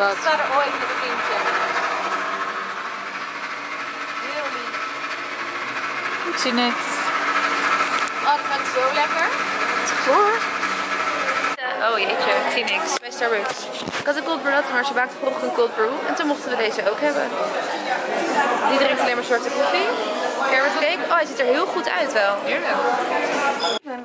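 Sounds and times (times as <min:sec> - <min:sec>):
fuel pump motor whine: 0:00.0 - 0:12.7.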